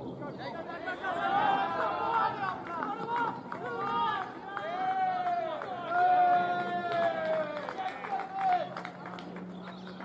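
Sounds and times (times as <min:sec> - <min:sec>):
men shouting calls: 0:00.3 - 0:08.8.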